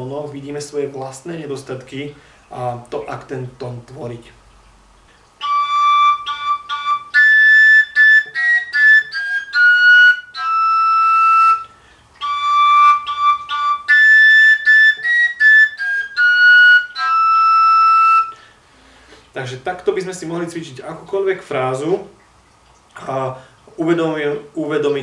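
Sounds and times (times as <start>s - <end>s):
overtone flute phrase: 5.4s - 18.4s.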